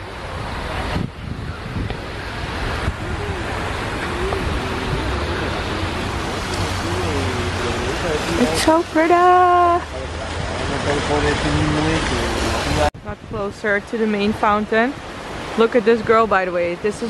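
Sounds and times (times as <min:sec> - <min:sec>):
fountain water splashing: 0:00.0 - 0:17.0
wind on microphone: 0:00.0 - 0:17.0.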